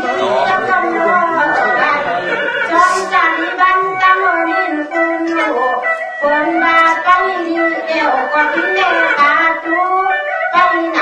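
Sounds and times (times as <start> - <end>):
instrumental accompaniment: 0.0 - 11.0
person singing ornamented phrases: 0.0 - 11.0.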